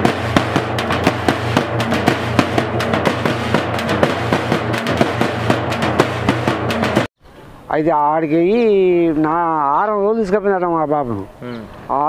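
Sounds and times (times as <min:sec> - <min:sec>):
fast steady drumming: 0:00.0 - 0:07.1
music: 0:00.0 - 0:07.1.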